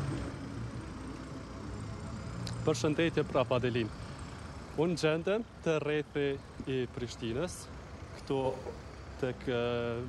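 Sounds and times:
heavy truck idling: 0.0 - 10.0
idling engines in traffic: 0.0 - 10.0.

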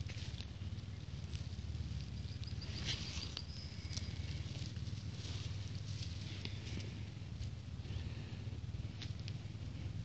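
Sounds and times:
leaves rustling and crackling: 0.0 - 7.0
low wind rumble: 0.0 - 10.0.

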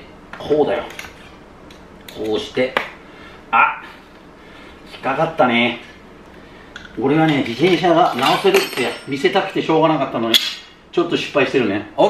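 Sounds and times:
man talking: 2.2 - 2.9, 3.5 - 4.0, 4.9 - 6.0, 6.9 - 12.0.

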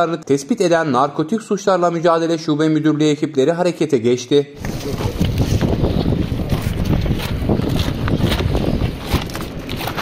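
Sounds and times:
wind buffeting microphone: 4.6 - 10.0.

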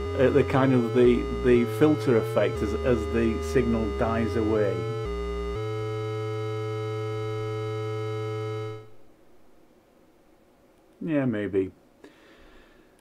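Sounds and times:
analogue synthesizer tone: 0.0 - 9.1.

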